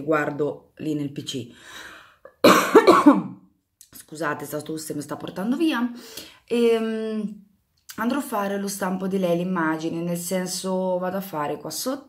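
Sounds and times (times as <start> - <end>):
woman coughing into her hands: 2.3 - 3.4.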